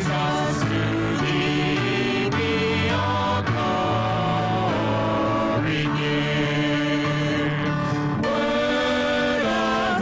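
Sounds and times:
vocal quartet singing in harmony: 0.0s - 10.0s.

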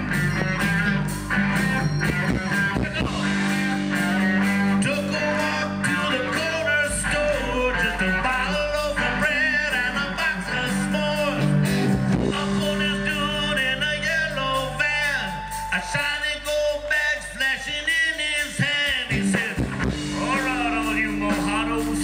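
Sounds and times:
bass and drums: 0.0s - 22.0s
electric guitar: 0.0s - 22.0s.

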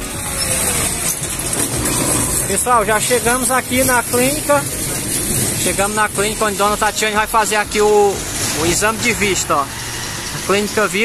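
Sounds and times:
motor vehicle running nearby: 0.0s - 11.0s.

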